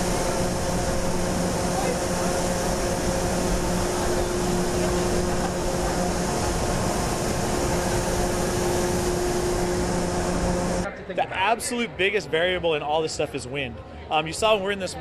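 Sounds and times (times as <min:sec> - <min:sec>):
rushing air roar: 0:00.0 - 0:10.9
low machine hum: 0:00.0 - 0:11.6.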